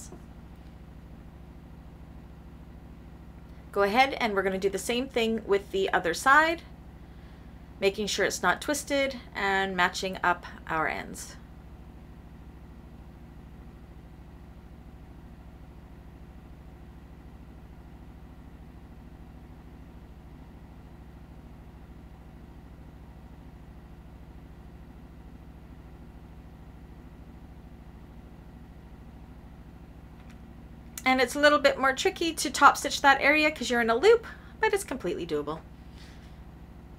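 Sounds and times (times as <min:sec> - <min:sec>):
low electrical hum: 0:00.0 - 0:36.9.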